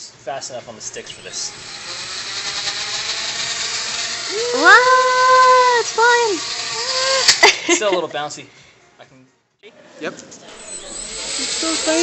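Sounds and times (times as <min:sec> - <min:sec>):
small drone motors whining: 0:01.0 - 0:07.6, 0:10.5 - 0:12.0.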